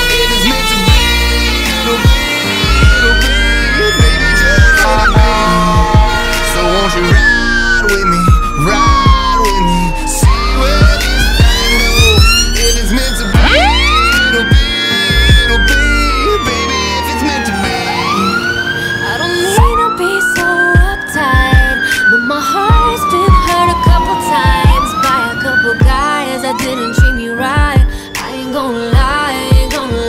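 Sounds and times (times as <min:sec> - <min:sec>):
background music: 0:00.0 - 0:30.0
fire engine siren wailing: 0:00.0 - 0:30.0
low rumble: 0:02.7 - 0:16.4.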